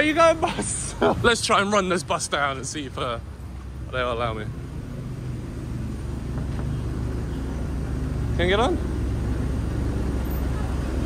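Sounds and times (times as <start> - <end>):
bus engine rumbling: 0.0 - 11.0.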